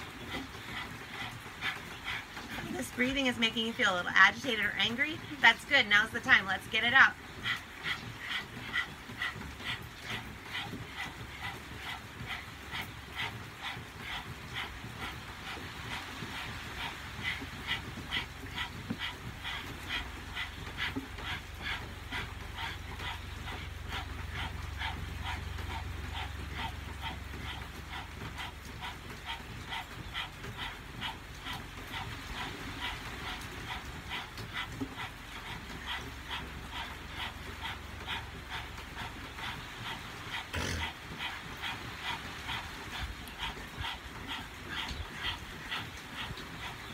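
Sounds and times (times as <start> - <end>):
people panting rapidly: 0.0 - 46.9.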